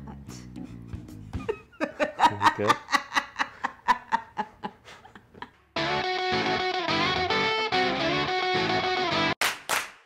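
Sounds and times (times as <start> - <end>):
people laughing: 1.4 - 5.6.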